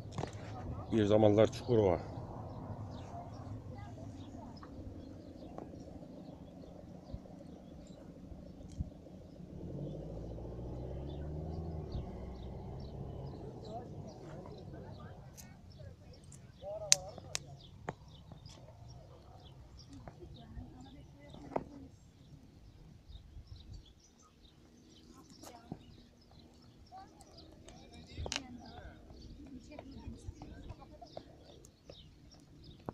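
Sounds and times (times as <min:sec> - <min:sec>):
faint voices: 0:00.0 - 0:08.2, 0:11.0 - 0:22.6, 0:24.2 - 0:32.9
small birds chirping: 0:00.0 - 0:32.9
sharp clicks: 0:16.3 - 0:18.6.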